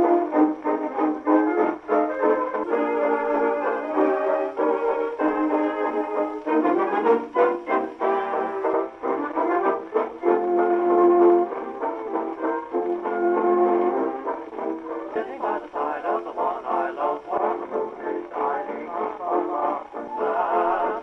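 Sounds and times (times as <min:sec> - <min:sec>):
brass band music on gramophone: 0:00.0 - 0:21.0.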